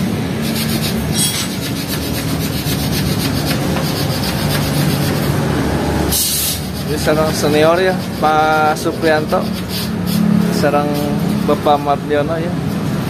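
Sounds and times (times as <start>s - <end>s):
hand tool scraping metal: 0.4s - 5.4s, 6.1s - 11.9s.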